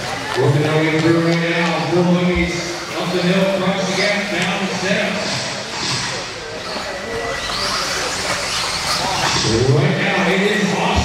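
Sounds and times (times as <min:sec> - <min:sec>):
rc car motors whining: 0:03.0 - 0:10.9.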